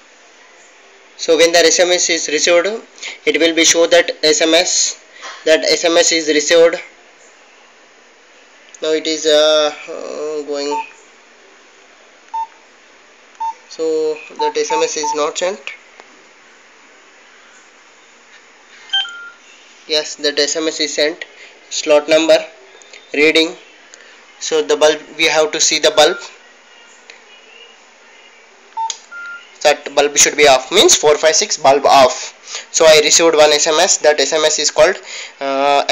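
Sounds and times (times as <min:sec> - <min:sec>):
faint steady hiss: 0:00.0 - 0:35.9
phone keypad beep: 0:12.3 - 0:12.5, 0:18.9 - 0:19.4, 0:28.8 - 0:29.4
short electronic beep: 0:18.9 - 0:19.4.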